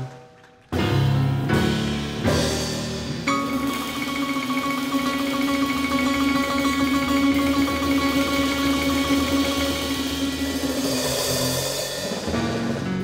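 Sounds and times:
jazz piano bass and drums trio: 0:00.0 - 0:13.0.

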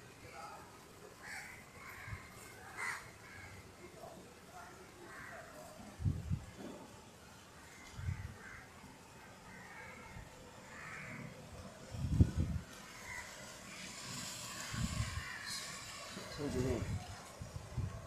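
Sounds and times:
crows cawing: 0:01.2 - 0:03.7, 0:05.0 - 0:05.8, 0:07.6 - 0:11.7, 0:12.9 - 0:16.4.

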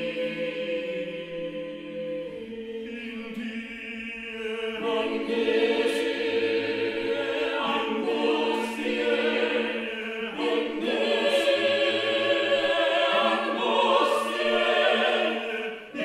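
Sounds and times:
vocal ensemble singing a cappella: 0:00.0 - 0:16.0.

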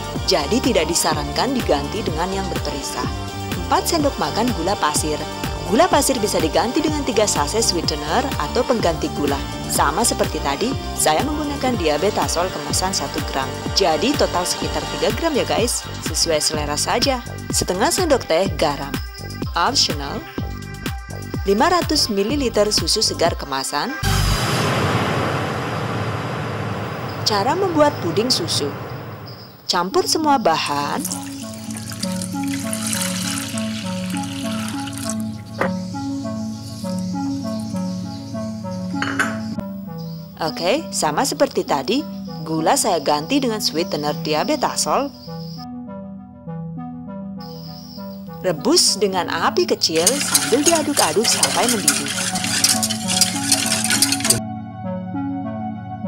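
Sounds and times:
rushing noise with low rumble: 0:24.0 - 0:29.4
whisk scraping a pot: 0:49.9 - 0:54.4.

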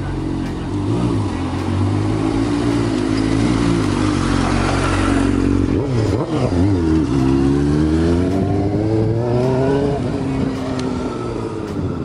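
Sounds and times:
motorcycle throttle revving: 0:00.0 - 0:12.0.

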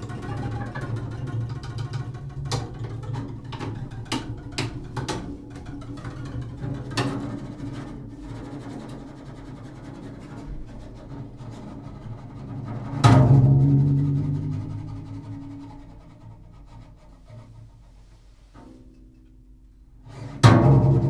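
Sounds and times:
bowed double bass: 0:00.0 - 0:21.0.

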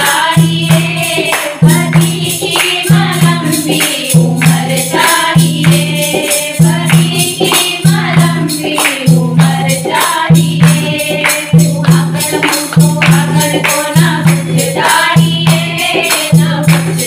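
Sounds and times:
dholak drum rhythm: 0:00.0 - 0:17.0
women singing in unison: 0:00.0 - 0:17.0
hand claps: 0:00.1 - 0:17.0.

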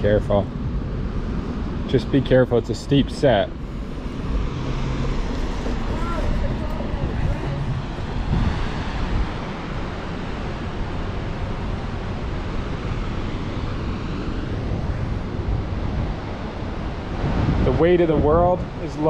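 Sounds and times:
wind buffeting microphone: 0:00.0 - 0:19.0
waterfall roaring: 0:03.0 - 0:18.2.

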